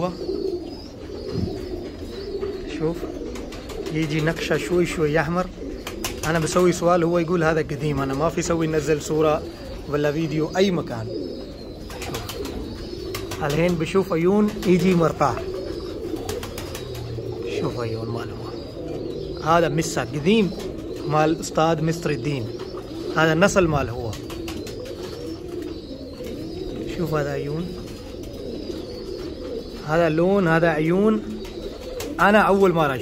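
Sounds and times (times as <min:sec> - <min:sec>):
pigeons cooing: 0:00.0 - 0:33.0.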